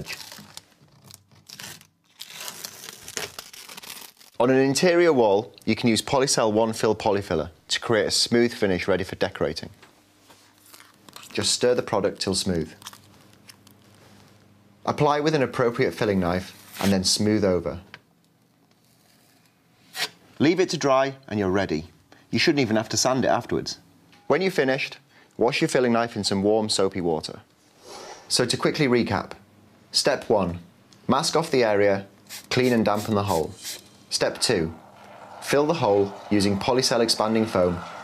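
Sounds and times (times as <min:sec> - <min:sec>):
masking tape peeling off wall: 0:00.0 - 0:04.5, 0:18.7 - 0:20.1.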